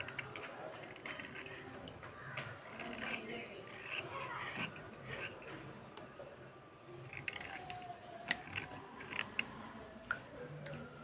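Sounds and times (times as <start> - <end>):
blade scraping slate pencil: 0.0 - 5.7, 7.0 - 9.9.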